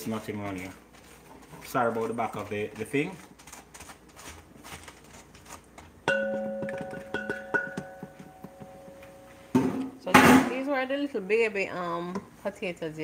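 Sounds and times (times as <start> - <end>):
knocks on metal bowl: 6.1 - 8.8
metal bowl ringing: 6.1 - 9.5.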